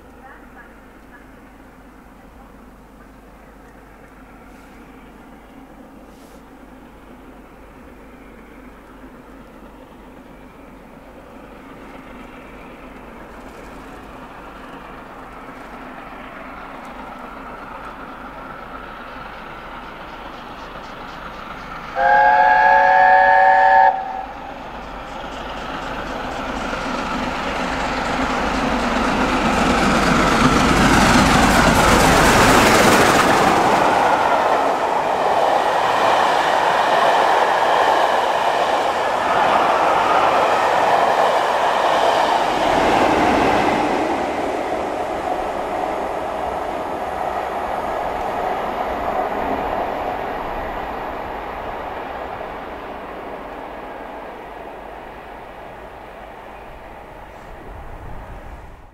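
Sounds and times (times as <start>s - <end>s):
train passing at speed: 0.0s - 58.9s
steam locomotive chime whistle: 21.6s - 25.0s.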